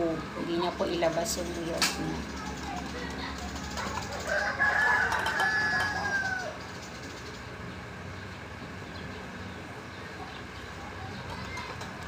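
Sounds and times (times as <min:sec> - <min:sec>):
rooster crowing: 0:04.1 - 0:06.7.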